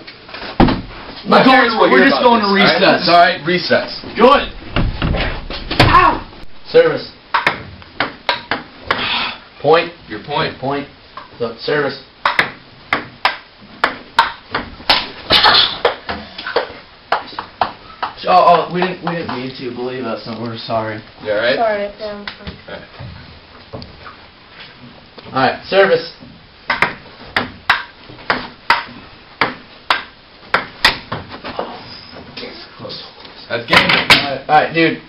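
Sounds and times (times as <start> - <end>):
ping pong ball clicking off paddles: 7.3 - 9.0, 12.2 - 15.0, 26.7 - 31.1.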